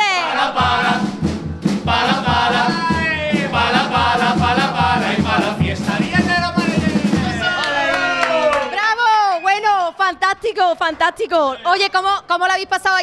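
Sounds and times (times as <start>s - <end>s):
steady beat: 0.0s - 7.6s
group singing a comic song: 0.0s - 8.0s.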